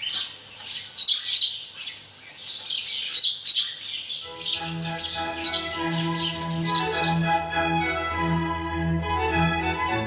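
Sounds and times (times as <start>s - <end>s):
small birds chirping: 0.0s - 7.4s.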